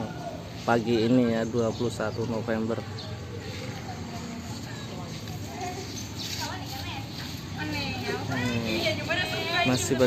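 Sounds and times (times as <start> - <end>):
outdoor background noise: 0.0 - 10.0
people talking: 0.0 - 10.0.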